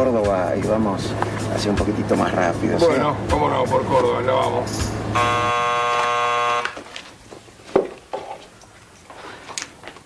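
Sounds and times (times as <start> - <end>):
door buzzer buzzing: 5.1 - 6.9.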